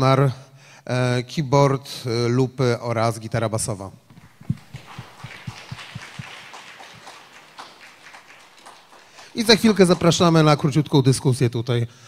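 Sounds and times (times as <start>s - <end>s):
audience applauding: 4.1s - 10.9s.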